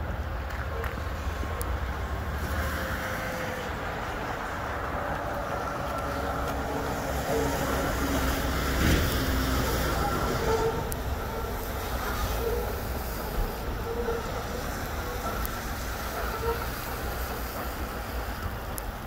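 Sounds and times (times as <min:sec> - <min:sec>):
freight train rumbling on rails: 0:00.0 - 0:19.0
wheels squealing faintly: 0:05.8 - 0:18.7
train clunk: 0:05.8 - 0:19.0.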